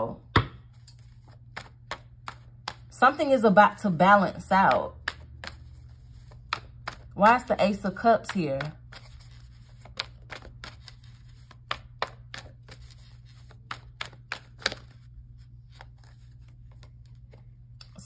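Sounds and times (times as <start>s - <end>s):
low steady hum: 0.0s - 18.0s
cards shuffling: 0.6s - 2.9s, 5.0s - 17.5s.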